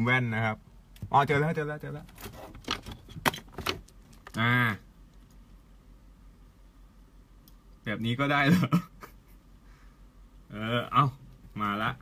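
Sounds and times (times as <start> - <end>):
handling clicks and rattles: 2.0 - 4.4.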